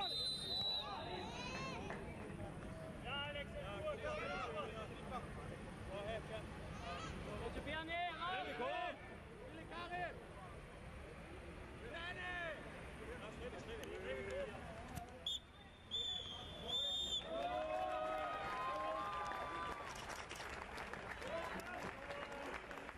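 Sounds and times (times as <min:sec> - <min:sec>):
referee's whistle blasts: 0:00.0 - 0:01.1, 0:15.2 - 0:17.3.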